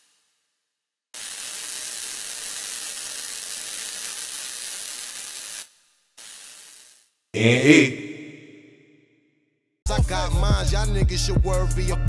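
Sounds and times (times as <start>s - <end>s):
steady hiss: 1.2s - 7.1s.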